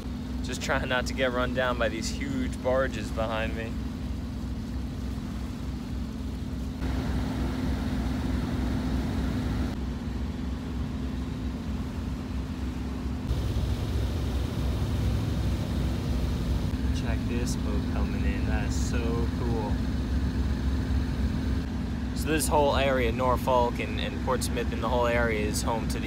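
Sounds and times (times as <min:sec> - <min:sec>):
water rushing: 0:00.0 - 0:09.8, 0:13.3 - 0:26.0
boat engine droning: 0:00.0 - 0:26.0
wind: 0:00.0 - 0:26.0.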